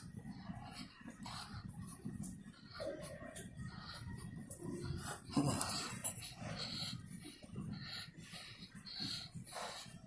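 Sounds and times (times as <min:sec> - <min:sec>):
footsteps on tiled floor: 0:00.0 - 0:10.0.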